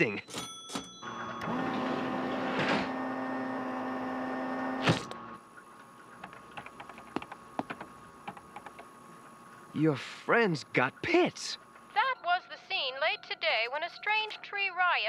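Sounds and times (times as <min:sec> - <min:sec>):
steady electronic hum: 0:03.0 - 0:15.0.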